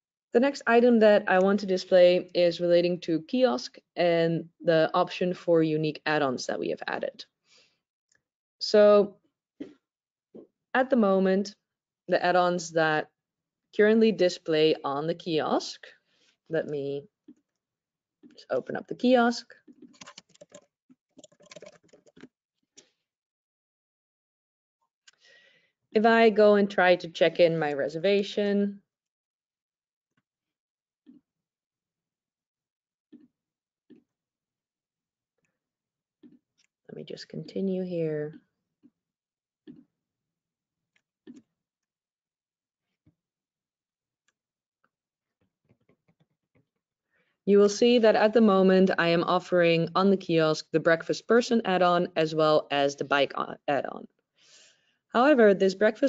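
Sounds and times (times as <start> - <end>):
computer keyboard typing: 19.8 - 22.3.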